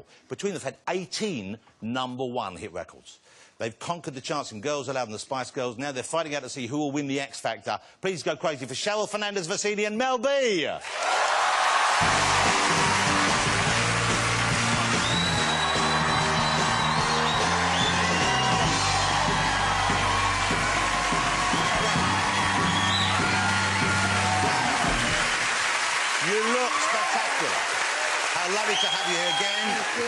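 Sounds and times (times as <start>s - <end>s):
studio audience cheering and applauding: 10.8s - 30.0s
walk-on music with bass line: 12.0s - 25.2s.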